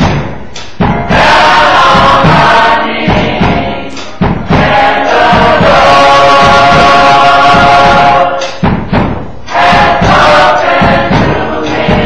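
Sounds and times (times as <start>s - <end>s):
gospel choir singing: 0.0s - 12.0s
steady low beat: 0.0s - 12.0s.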